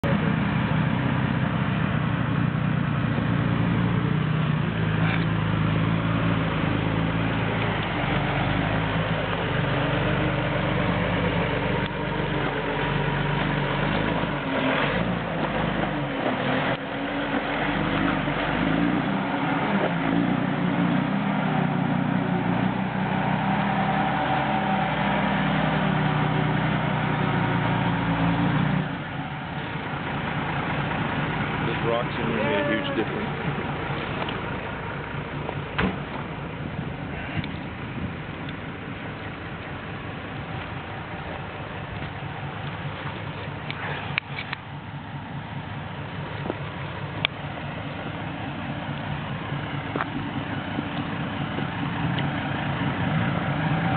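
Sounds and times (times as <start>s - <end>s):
diesel truck engine under load: 0.0s - 53.9s.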